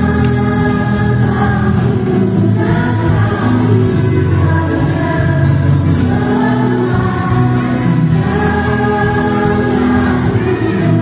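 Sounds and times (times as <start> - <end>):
group singing with instruments: 0.0 - 11.0.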